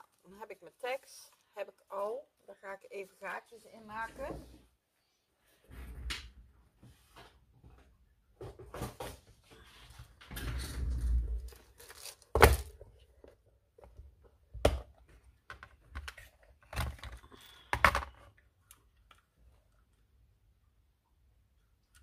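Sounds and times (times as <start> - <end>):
plastic rustling: 11.4 - 13.4
plastic box clicks and knocks: 13.8 - 18.3.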